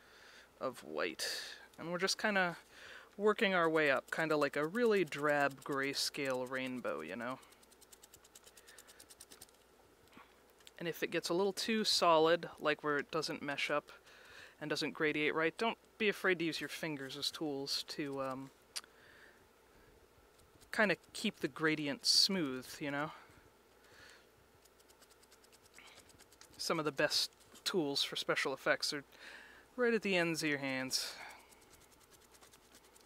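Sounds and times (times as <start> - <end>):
paintbrush scratching on foam: 3.3 - 9.6, 16.5 - 18.5, 20.4 - 22.8, 24.6 - 27.8, 30.4 - 33.0.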